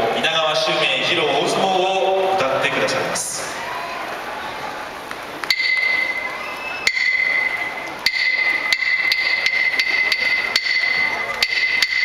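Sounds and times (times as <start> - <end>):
wooden clappers clacking: 5.4 - 12.0.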